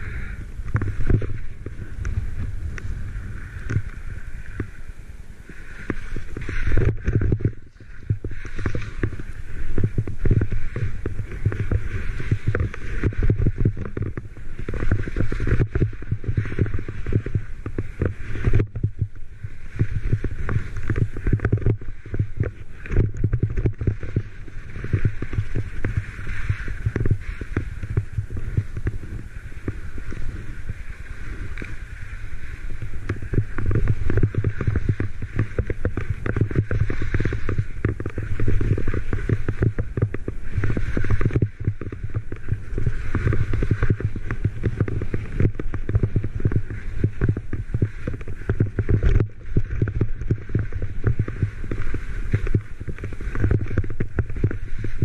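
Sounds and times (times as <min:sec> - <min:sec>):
skis hissing on snow: 0:00.0 - 0:13.2, 0:24.1 - 0:36.2, 0:42.4 - 0:44.1
wind buffeting microphone: 0:00.0 - 0:55.0.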